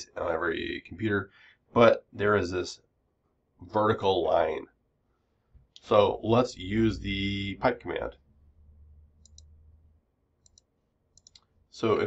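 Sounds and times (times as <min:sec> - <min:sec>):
faint steady hum: 0:00.0 - 0:12.0
computer mouse clicks: 0:09.2 - 0:09.6, 0:10.4 - 0:11.5.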